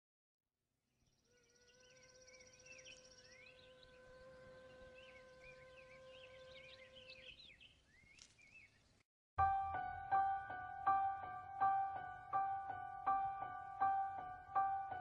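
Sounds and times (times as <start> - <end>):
faint songbirds chirping: 0.9 - 15.0.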